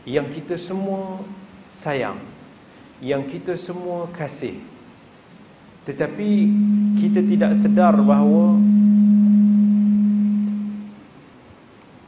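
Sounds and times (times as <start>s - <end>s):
low feedback howl: 6.0s - 11.0s.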